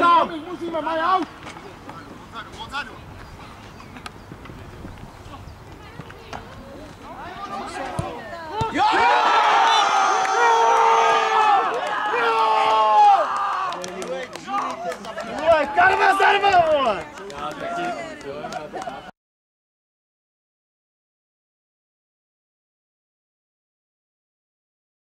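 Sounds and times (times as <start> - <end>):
men shouting and cheering: 7.2 - 19.1.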